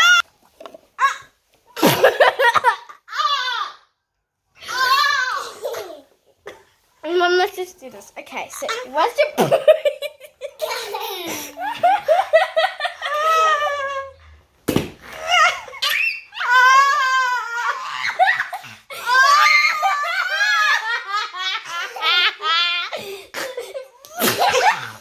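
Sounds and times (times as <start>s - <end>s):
child laughing: 4.7s - 6.2s, 9.4s - 14.2s, 15.2s - 25.0s
woman laughing: 9.4s - 14.1s.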